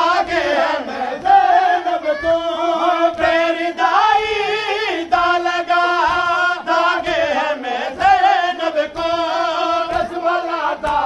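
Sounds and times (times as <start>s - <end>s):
voice chanting a lament: 0.0s - 11.0s.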